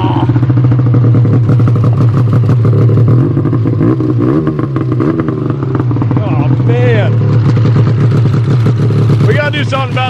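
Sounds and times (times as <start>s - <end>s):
snowmobile engine idling: 0.0s - 10.0s.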